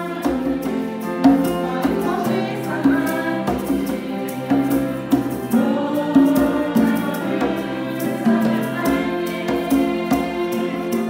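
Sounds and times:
conga drums: 0.0s - 11.0s
people singing into microphones: 0.0s - 11.0s
piano: 0.0s - 11.0s
violins: 0.0s - 11.0s.

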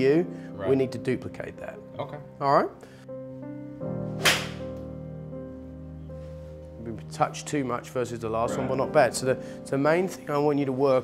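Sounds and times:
soft background music: 0.0s - 11.0s
golf club striking ball: 4.2s - 4.7s.

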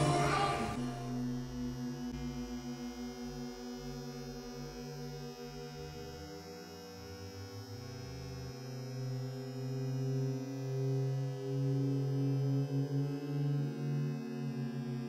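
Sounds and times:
low droning music pad: 0.0s - 15.0s.

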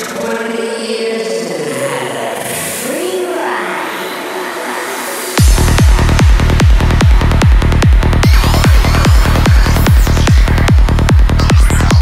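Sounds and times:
layered synth pads: 0.0s - 12.0s.

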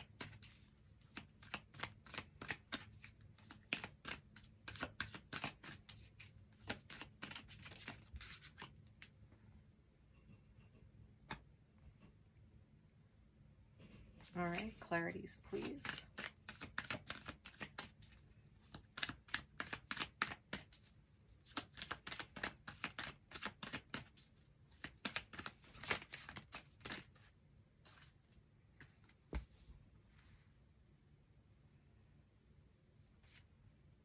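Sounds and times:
cards being shuffled: 0.0s - 9.1s, 15.5s - 28.2s.

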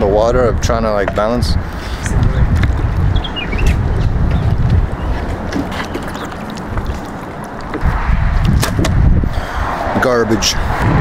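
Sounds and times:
skateboard wheels rumbling: 1.1s - 9.1s.

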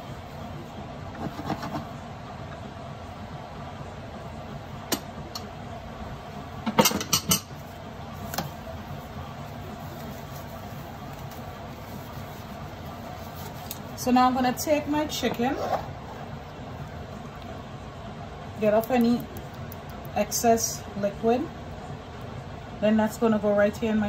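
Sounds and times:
kitchen background hum: 0.0s - 24.0s.

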